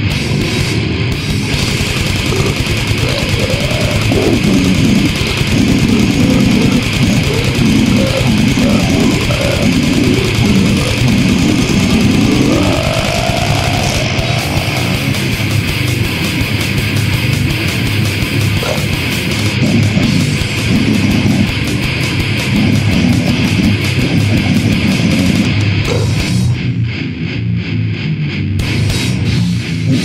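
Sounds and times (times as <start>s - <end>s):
death metal band playing: 0.0s - 30.0s
deep growled vocals: 1.4s - 16.2s, 18.2s - 26.7s, 29.6s - 30.0s.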